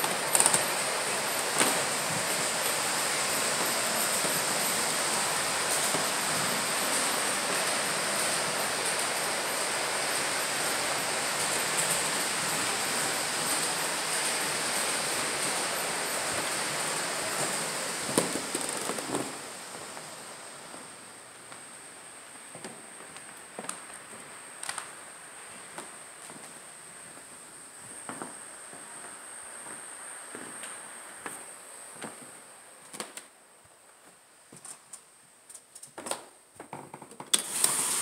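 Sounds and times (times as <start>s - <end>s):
steady rushing noise: 0.0s - 20.7s
faint high whine: 0.0s - 35.2s.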